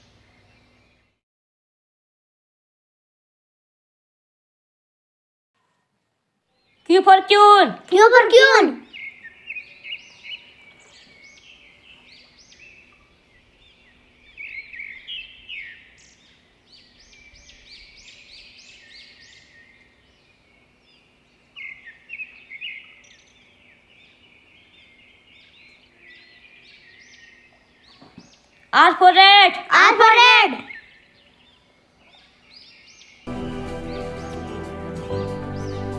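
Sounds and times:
birds chirping: 6.5s - 35.9s.

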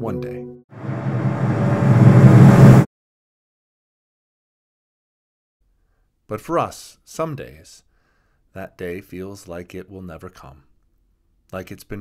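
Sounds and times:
rumbling cinematic riser: 0.7s - 2.9s.

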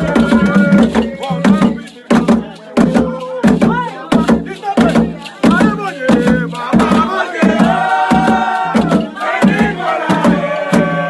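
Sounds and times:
crowd chanting and singing: 0.0s - 11.0s
hand drum beating: 0.0s - 11.0s.

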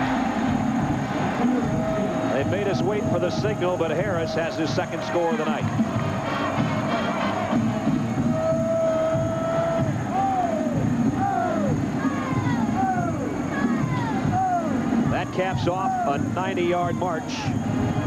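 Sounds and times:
stadium crowd noise: 0.0s - 18.0s.

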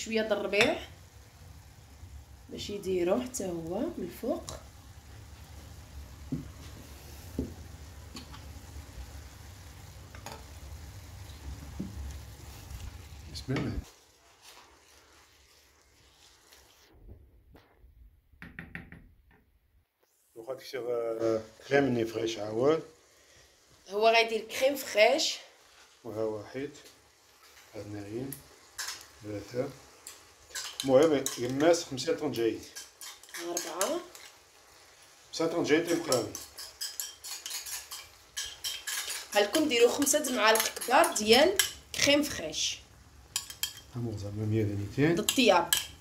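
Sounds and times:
wooden spoon knocking on frying pan: 6.2s - 6.6s, 7.3s - 7.6s, 18.4s - 19.1s.

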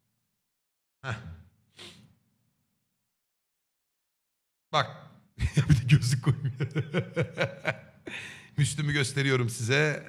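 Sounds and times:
soft exhale: 1.8s - 2.1s
man laughing breathily: 5.4s - 8.6s.

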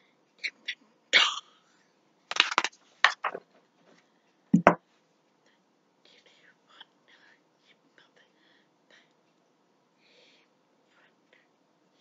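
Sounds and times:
faint breathy whispering: 5.4s - 9.2s, 10.0s - 12.0s.

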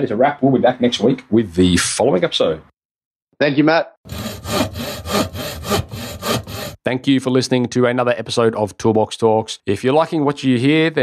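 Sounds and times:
hand saw cutting wood: 4.1s - 6.8s.

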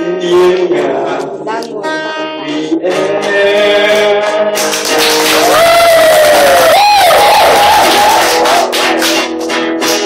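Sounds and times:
man singing: 0.0s - 5.9s
acoustic guitar: 0.0s - 10.0s
audience noise: 4.5s - 10.0s.

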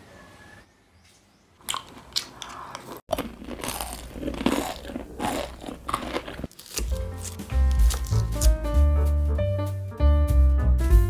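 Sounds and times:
crunchy food chewing: 1.6s - 8.7s.

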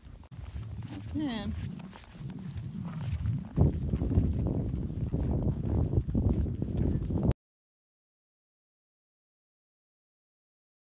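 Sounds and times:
hoofbeats on pavement: 0.0s - 7.3s
low microphone rumble: 0.0s - 7.3s.

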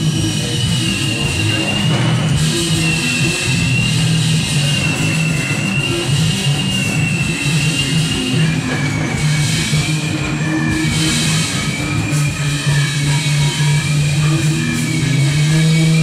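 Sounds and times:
live rock band: 0.0s - 16.0s
pulsing bass line: 0.0s - 16.0s.

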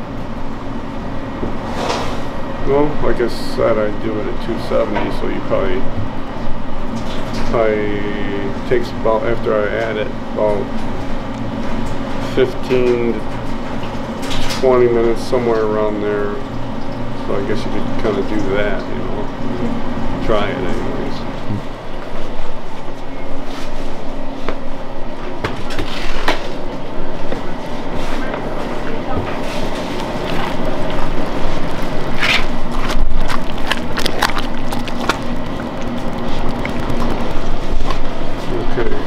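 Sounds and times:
syrup boiling in a kettle: 29.4s - 39.0s.

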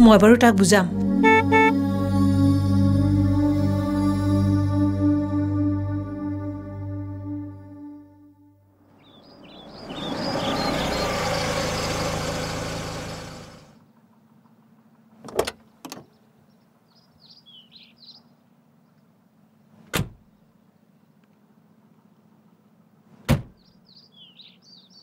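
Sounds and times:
birds chirping faintly: 8.9s - 13.5s, 15.6s - 19.7s, 23.6s - 25.0s
loud rushing noise: 9.2s - 13.7s
car doors slamming: 19.9s - 20.2s, 23.2s - 23.6s.

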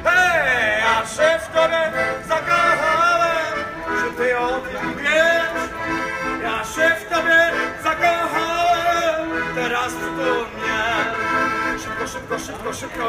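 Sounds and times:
accordion playing a melody: 0.0s - 13.0s.

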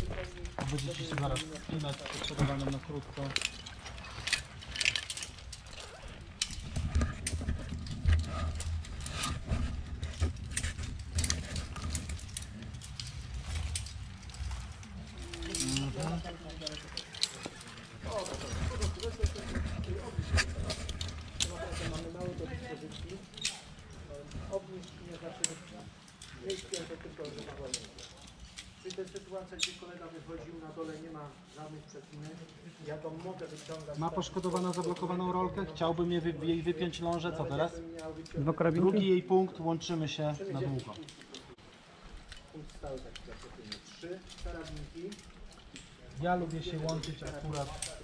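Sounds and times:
metal carabiners clinking: 0.0s - 30.0s, 33.1s - 38.9s, 40.5s - 48.0s.

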